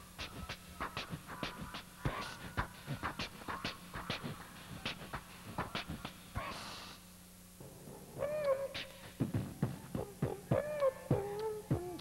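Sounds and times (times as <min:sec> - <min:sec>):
beatboxing hissed snare: 0:00.0 - 0:07.1, 0:08.2 - 0:12.0
beatboxing hooted tone: 0:00.0 - 0:07.1, 0:08.1 - 0:12.0.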